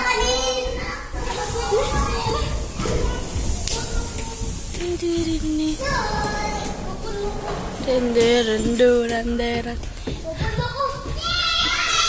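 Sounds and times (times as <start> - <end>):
children calling out and chattering: 0.0 - 12.0.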